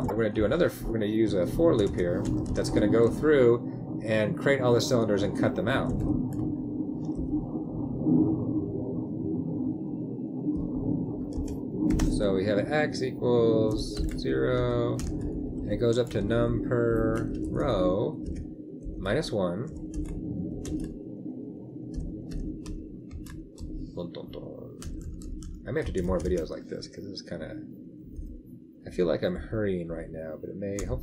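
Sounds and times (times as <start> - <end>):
steady low hum: 0.0 - 31.0
faint keyboard taps: 24.8 - 26.6.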